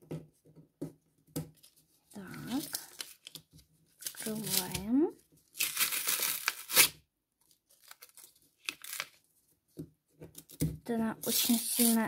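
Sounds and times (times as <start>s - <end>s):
paper rustling and crinkling: 1.5s - 9.3s, 11.2s - 12.0s
paper tearing: 5.6s - 7.0s, 11.3s - 12.0s.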